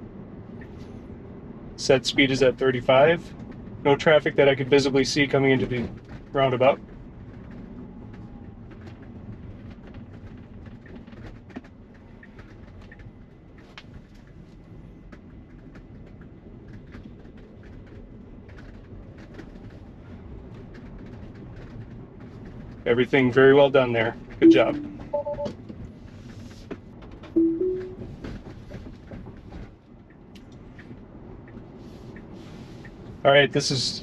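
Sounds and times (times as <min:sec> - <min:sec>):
road and tyre noise: 0:00.0 - 0:34.0.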